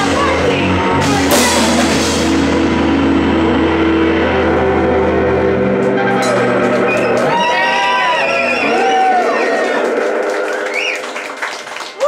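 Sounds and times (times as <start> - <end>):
electric bass and guitars chord: 0.0 - 11.0.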